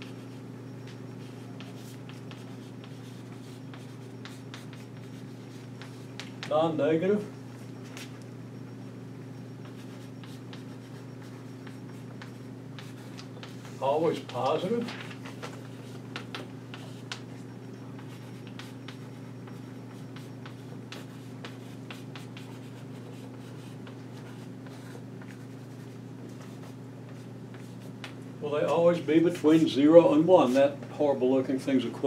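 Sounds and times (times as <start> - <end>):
low room hum: 0.0 - 32.0
chalk writing on blackboard: 1.2 - 6.4, 9.6 - 14.4, 15.7 - 17.2, 18.0 - 28.2.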